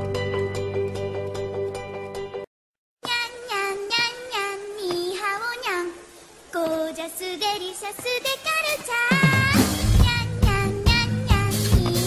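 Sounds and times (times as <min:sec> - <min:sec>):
high-pitched voice singing: 0:03.0 - 0:12.0.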